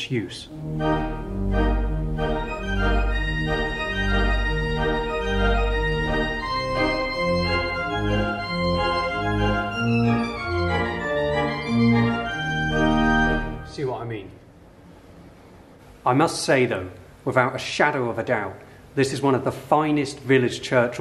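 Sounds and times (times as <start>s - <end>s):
pipe organ with vibrato: 0.4s - 14.0s.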